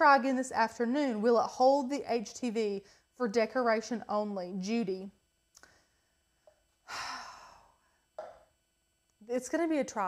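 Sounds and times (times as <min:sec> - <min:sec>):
woman sighing: 0:06.9 - 0:07.8.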